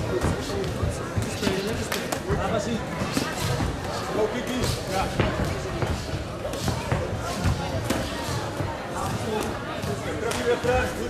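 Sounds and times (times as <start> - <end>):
voices in a hall: 0.0 - 11.0.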